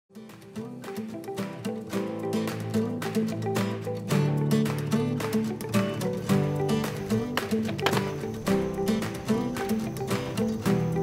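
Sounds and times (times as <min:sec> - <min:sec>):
background music with steady beat: 0:00.2 - 0:11.0.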